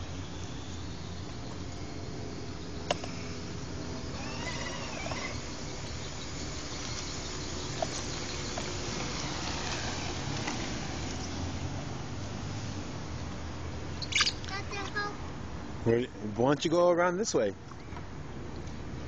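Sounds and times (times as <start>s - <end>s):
outdoor background hum: 0.0s - 19.0s.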